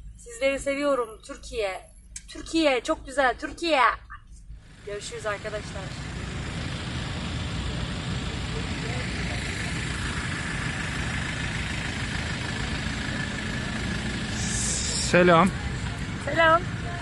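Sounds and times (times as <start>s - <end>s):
car engines idling in traffic: 0.0s - 17.0s.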